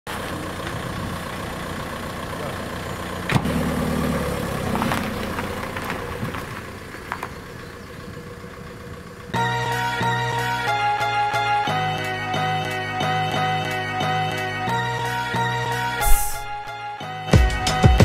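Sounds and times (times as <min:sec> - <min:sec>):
car engine idling: 0:00.1 - 0:09.8
music: 0:09.4 - 0:18.0
sharp thump: 0:16.0 - 0:16.7.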